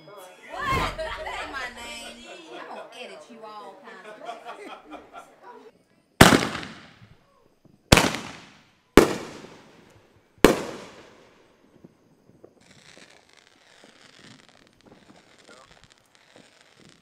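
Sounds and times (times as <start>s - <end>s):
faint steady hiss: 0.0s - 17.0s
loud fireworks explosions: 0.6s - 2.2s, 6.2s - 7.2s, 7.9s - 17.0s.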